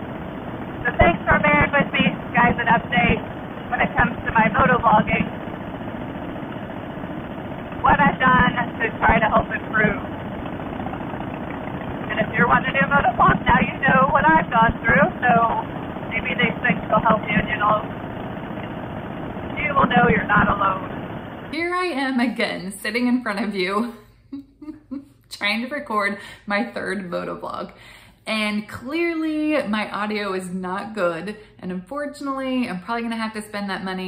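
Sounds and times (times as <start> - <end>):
motorcycle engine at highway speed: 0.0 - 21.6
muffled woman's voice: 0.8 - 5.5, 7.8 - 10.2, 12.1 - 18.0, 19.5 - 34.0.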